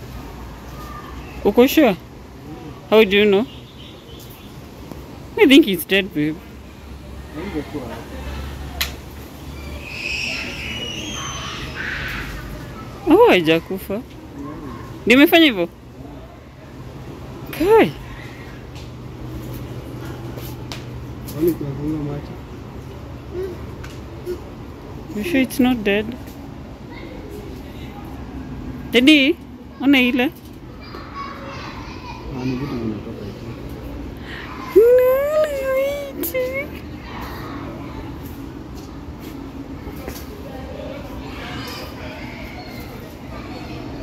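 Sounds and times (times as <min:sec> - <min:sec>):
chatter of voices: 0:06.3 - 0:44.0
birds whistling and chirping: 0:09.5 - 0:12.4.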